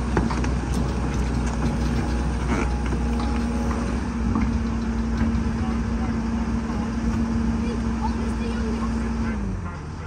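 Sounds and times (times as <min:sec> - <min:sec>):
diesel excavator engine running: 0:00.0 - 0:10.0.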